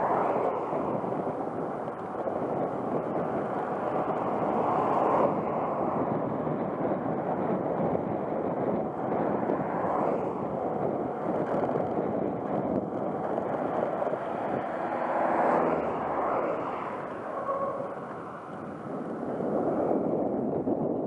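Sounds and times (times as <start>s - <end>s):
tyre noise on asphalt: 0.0s - 21.0s
wind rushing over microphone: 0.0s - 21.0s.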